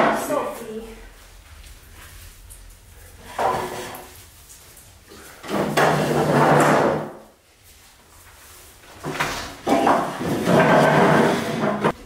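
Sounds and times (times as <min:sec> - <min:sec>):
furniture scraping on wood floor: 0:03.2 - 0:04.2, 0:05.4 - 0:07.3, 0:08.9 - 0:12.0.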